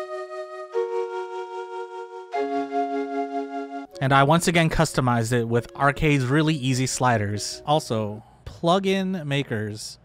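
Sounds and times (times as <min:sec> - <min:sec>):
held flute chords: 0:00.0 - 0:08.2.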